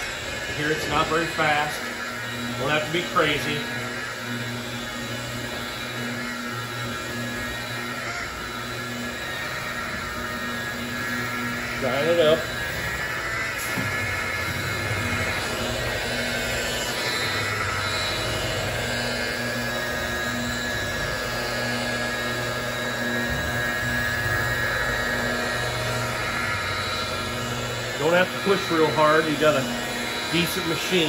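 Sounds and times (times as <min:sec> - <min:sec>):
rotary polisher motor running: 0:00.0 - 0:31.0.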